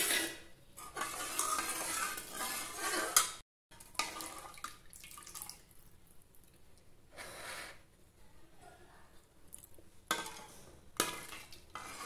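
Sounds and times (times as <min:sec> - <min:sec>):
ladle scraping and clinking on pan: 0:00.0 - 0:03.4, 0:10.1 - 0:12.0.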